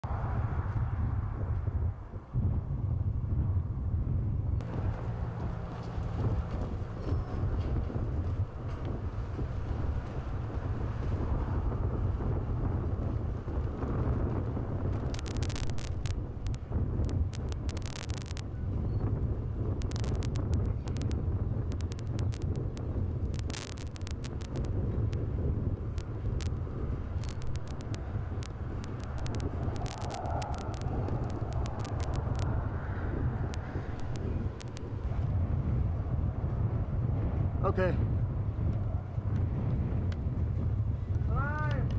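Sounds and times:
wind buffeting microphone: 0.0 - 41.9
sharp clicks and crackles: 13.8 - 35.3, 41.1 - 41.9.

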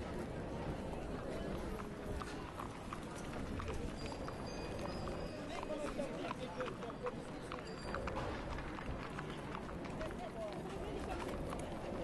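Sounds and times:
hooves clip-clopping: 0.0 - 12.0
murmur of voices: 0.0 - 12.0.

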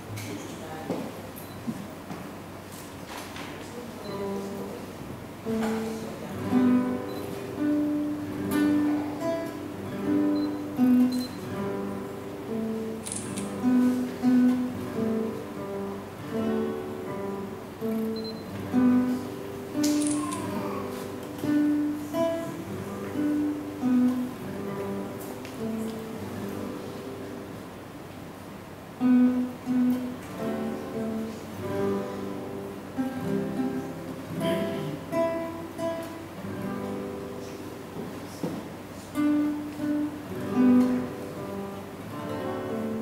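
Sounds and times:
classical guitar duet: 0.0 - 43.0.

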